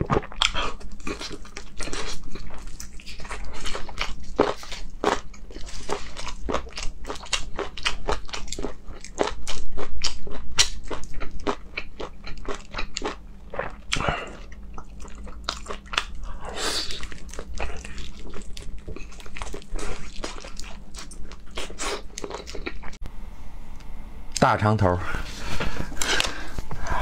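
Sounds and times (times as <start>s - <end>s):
person chewing crunchy meat: 0.0s - 23.0s.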